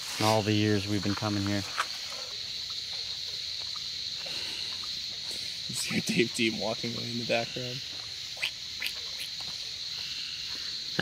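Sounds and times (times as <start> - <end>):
crickets and insects trilling: 0.0 - 11.0.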